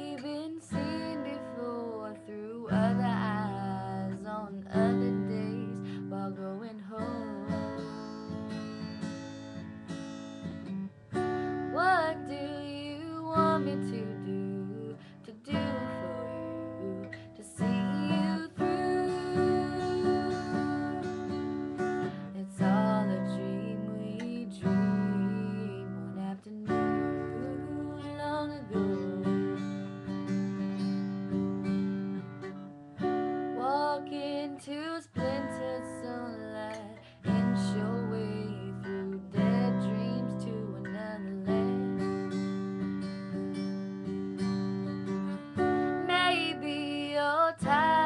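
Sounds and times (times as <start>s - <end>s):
woman singing: 0.0s - 9.2s, 11.2s - 31.0s, 33.4s - 43.7s, 44.3s - 48.0s
acoustic guitar strumming: 0.0s - 34.5s, 35.2s - 48.0s.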